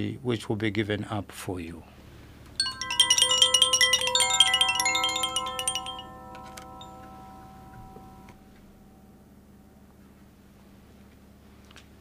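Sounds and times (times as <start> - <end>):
small bells jangling: 2.6 - 8.3.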